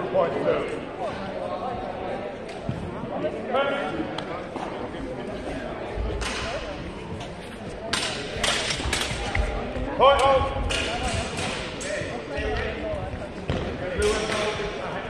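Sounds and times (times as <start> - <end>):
voices in a hall: 0.0 - 15.0.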